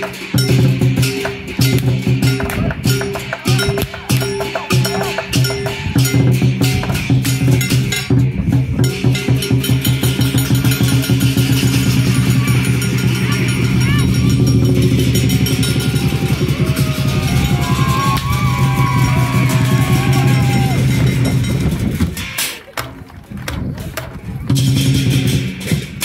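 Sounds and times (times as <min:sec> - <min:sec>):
cymbals clashing: 0:00.0 - 0:22.7
large drum beaten fast: 0:00.0 - 0:26.0
crowd voices: 0:01.3 - 0:09.3, 0:10.4 - 0:25.1.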